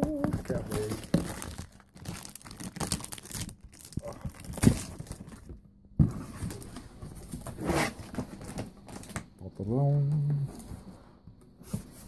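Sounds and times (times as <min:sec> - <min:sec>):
bubble wrap crinkling: 0:00.0 - 0:05.6, 0:06.2 - 0:09.2
cardboard flaps rustling and scraping: 0:04.4 - 0:09.2.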